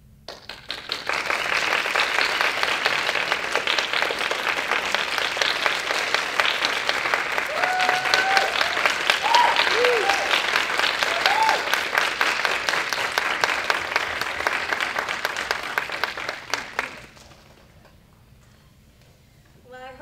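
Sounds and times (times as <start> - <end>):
audience applauding: 0.3 - 18.0
voice calls from crowd: 7.3 - 12.0.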